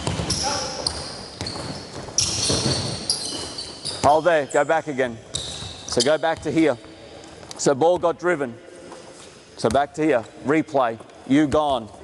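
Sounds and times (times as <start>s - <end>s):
basketball bouncing: 0.0s - 4.2s
sneakers squeaking on hardwood floor: 0.0s - 7.0s.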